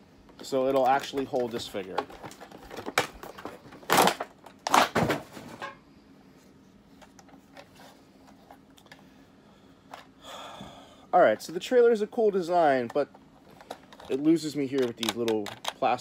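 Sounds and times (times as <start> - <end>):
plastic blister packaging crackling: 0.4 - 5.0
plastic toy parts clicking: 13.6 - 16.0.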